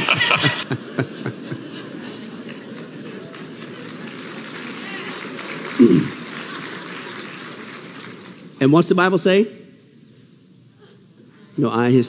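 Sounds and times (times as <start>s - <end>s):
audience murmur: 0.0s - 8.6s.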